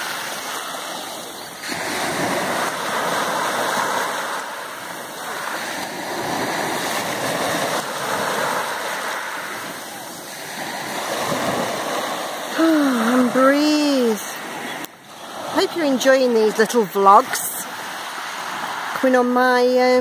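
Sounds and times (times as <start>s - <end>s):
waves breaking on pebble beach: 0.0s - 20.0s.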